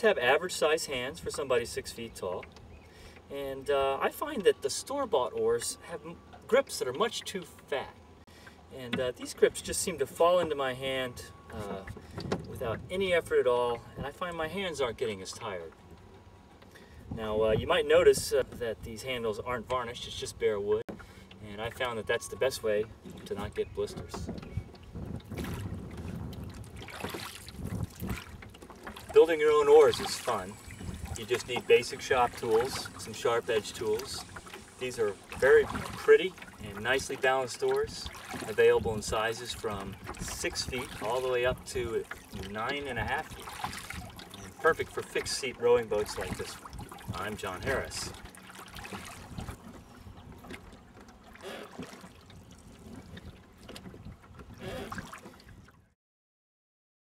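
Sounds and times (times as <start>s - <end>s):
oars stirring water: 0.0s - 55.9s
water dripping from oars: 0.2s - 17.1s, 20.9s - 55.8s
wind noise on microphone: 24.0s - 28.5s, 29.8s - 31.6s, 48.9s - 50.5s.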